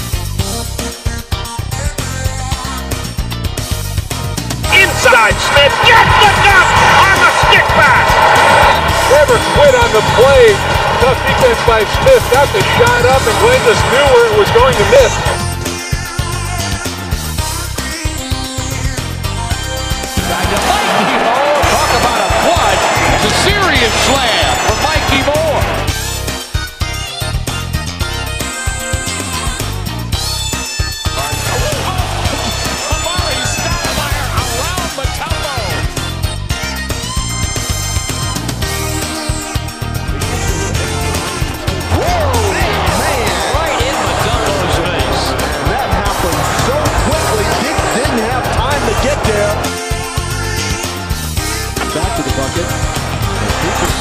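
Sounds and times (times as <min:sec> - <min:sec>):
background music with steady beat: 0:00.0 - 0:54.0
arena crowd noise: 0:04.6 - 0:15.6, 0:19.6 - 0:26.3, 0:31.1 - 0:36.1, 0:40.0 - 0:54.0.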